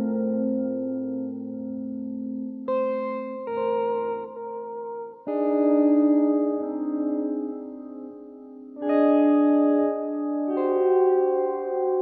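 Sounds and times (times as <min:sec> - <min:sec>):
electric guitar chords with echo: 0:00.0 - 0:12.0.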